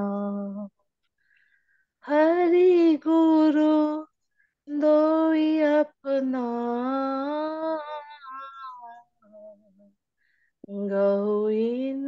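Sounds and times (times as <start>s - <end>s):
woman singing devotional song: 0.0s - 0.8s, 2.0s - 8.7s, 10.6s - 12.0s.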